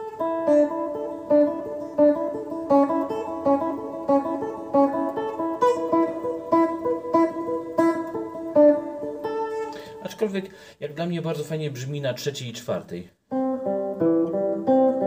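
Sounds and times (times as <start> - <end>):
clean electric guitar notes: 0.0 - 10.1, 13.3 - 15.0.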